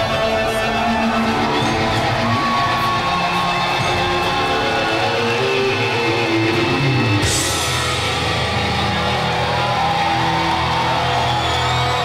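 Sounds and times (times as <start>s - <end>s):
crowd cheering: 0.0s - 12.0s
heavy metal band playing live: 0.0s - 12.0s.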